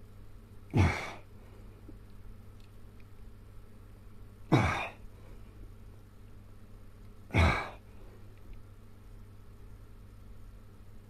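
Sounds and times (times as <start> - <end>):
man's strained breathy exhalation: 7.3 - 7.8.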